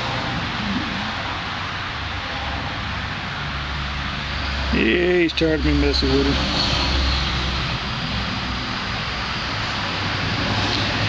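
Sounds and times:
low rumble: 0:00.0 - 0:04.8
steady rushing noise: 0:00.0 - 0:11.0.

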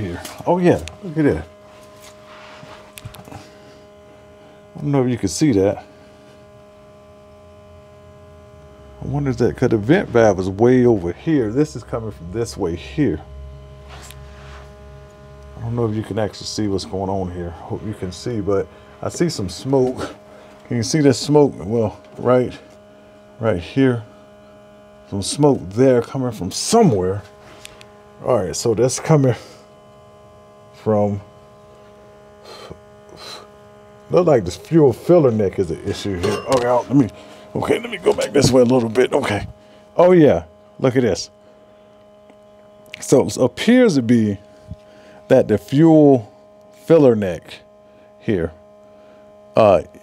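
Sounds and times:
steady electric hum: 0:00.0 - 0:50.0.

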